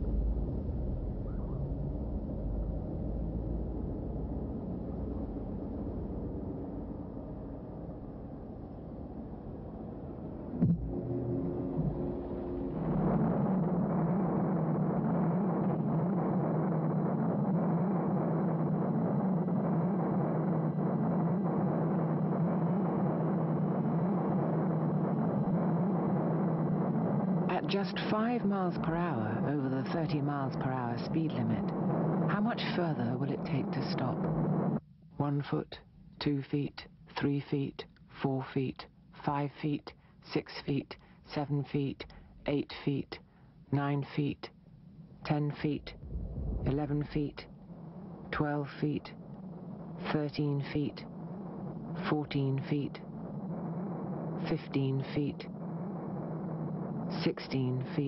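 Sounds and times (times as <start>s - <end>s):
traffic rumble: 0.0s - 28.9s, 44.8s - 48.4s.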